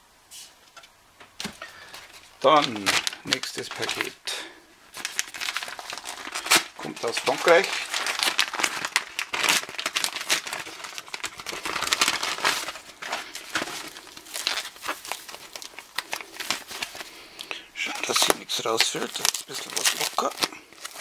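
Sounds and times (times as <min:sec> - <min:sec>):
plastic packaging crinkling: 0:01.4 - 0:21.0.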